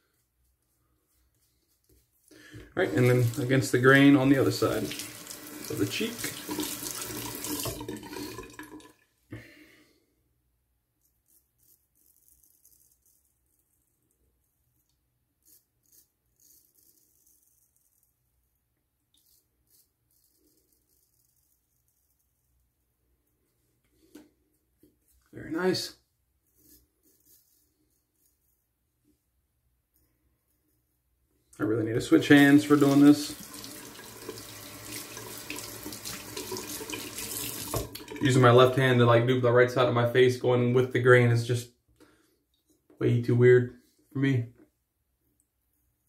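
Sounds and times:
running tap water: 2.8 - 9.0, 32.0 - 38.8
razor scraping stubble: 11.0 - 13.9, 14.8 - 18.2, 19.2 - 22.6, 26.4 - 28.6.

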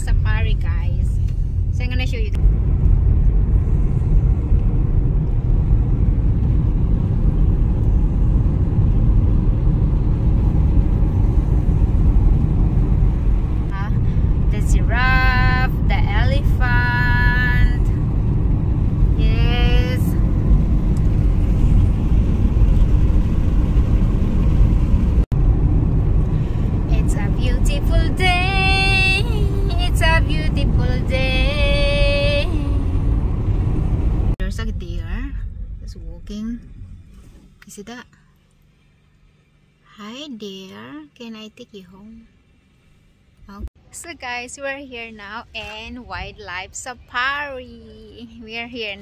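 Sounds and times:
car road and engine rumble: 0.0 - 49.0.

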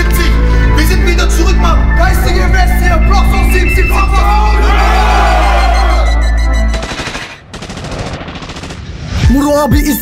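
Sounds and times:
machine-gun fire sound effect: 6.7 - 9.2
hip-hop beat with deep bass: 9.2 - 10.0.

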